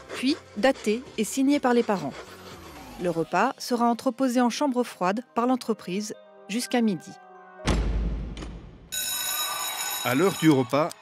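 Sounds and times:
refrigerator door thud: 7.6s - 8.7s
bell ringing: 8.9s - 11.0s.

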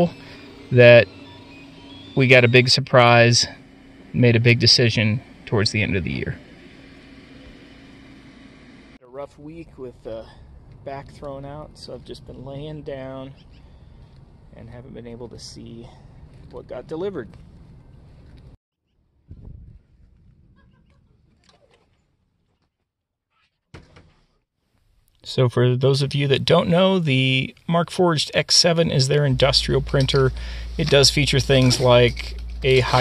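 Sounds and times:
faint low hum: 0.0s - 18.6s, 25.3s - 33.0s
handling rustle: 29.6s - 33.0s.

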